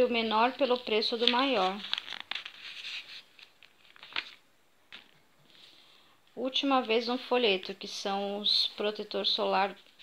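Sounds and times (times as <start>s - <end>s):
paper pages turning: 0.6s - 5.1s.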